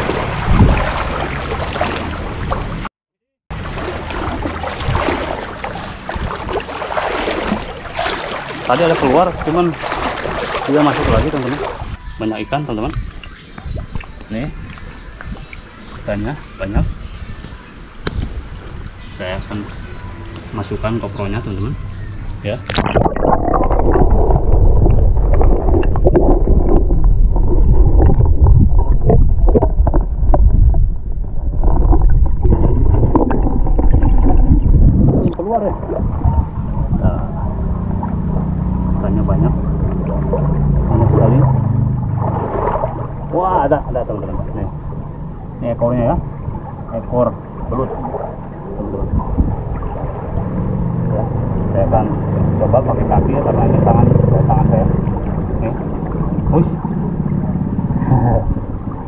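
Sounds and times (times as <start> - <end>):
underwater water rushing: 0.0 - 2.9, 3.5 - 12.1, 22.5 - 59.0
water splashing and gurgling: 0.0 - 2.9, 3.5 - 59.0.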